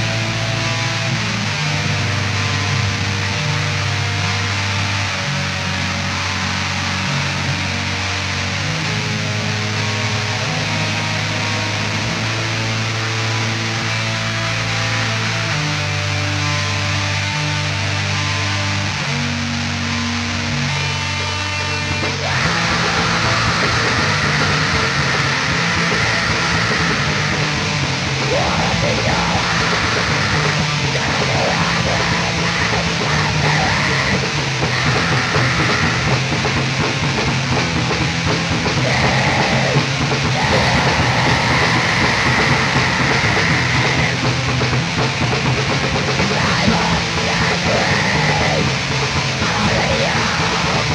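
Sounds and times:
bass guitar: 0.0 - 50.9
black metal band playing: 0.0 - 50.9
distorted guitars: 0.0 - 50.9
drums: 0.0 - 50.9.

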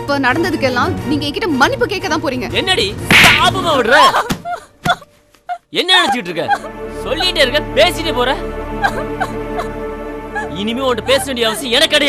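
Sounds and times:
slap sound effect: 3.1 - 3.6.

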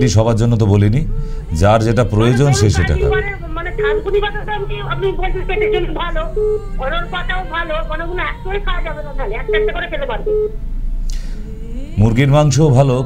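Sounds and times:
person talking over telephone: 2.2 - 10.5
short telephone beeps: 9.5 - 10.6.

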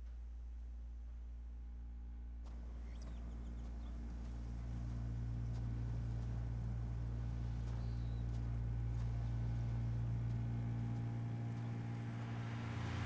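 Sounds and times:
low cello and electronic drone: 0.0 - 13.0
footsteps on gravel: 2.5 - 13.0.

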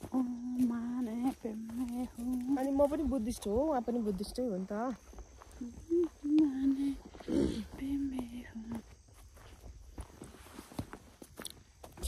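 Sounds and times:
woman humming: 0.0 - 3.2, 5.5 - 8.9
footsteps on dirt and grass: 0.0 - 12.0.

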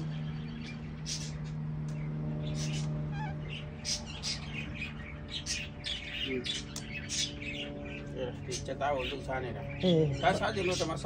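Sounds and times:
small birds chirping: 0.0 - 11.0
steady low hum: 0.0 - 11.0.

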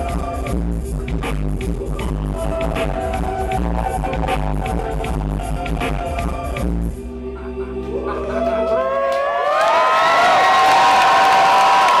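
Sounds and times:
band holding low notes: 0.0 - 8.8
audience cheering and whooping: 2.0 - 6.4, 8.0 - 12.0.

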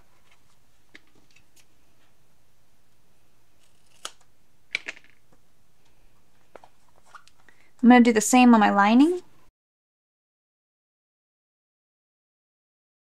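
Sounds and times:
scissors snipping: 3.6 - 4.2.

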